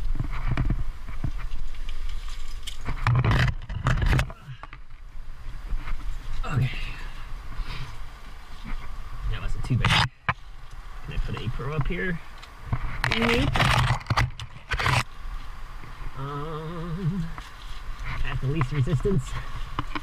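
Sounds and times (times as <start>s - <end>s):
leaves and branches rustling: 0.0s - 20.0s
person humming and grunting: 16.2s - 17.4s.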